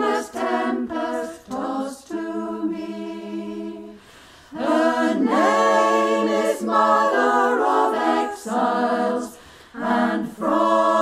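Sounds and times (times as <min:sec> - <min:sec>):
choir singing a cappella: 0:00.0 - 0:11.0.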